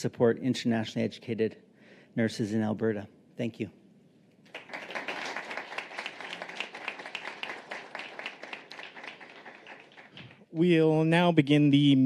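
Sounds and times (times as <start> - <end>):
audience applauding: 4.5 - 10.6.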